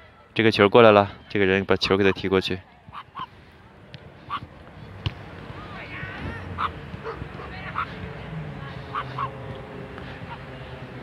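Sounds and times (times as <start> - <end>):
outdoor background noise: 0.0 - 11.0
distant dog barking: 6.6 - 7.9.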